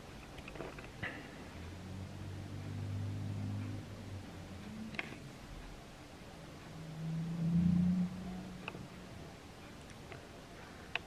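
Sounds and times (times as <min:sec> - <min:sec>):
soundtrack hum through tv speakers: 0:00.0 - 0:11.0.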